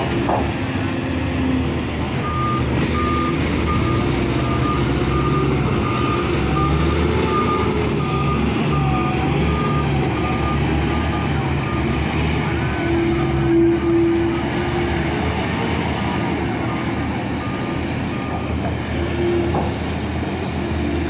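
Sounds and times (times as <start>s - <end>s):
diesel engine running: 0.0s - 21.0s
reversing alarm beeping: 2.2s - 15.0s, 16.6s - 19.7s.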